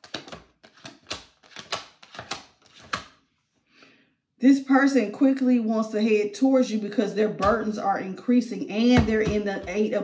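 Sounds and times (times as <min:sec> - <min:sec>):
cards being shuffled: 0:00.0 - 0:03.2.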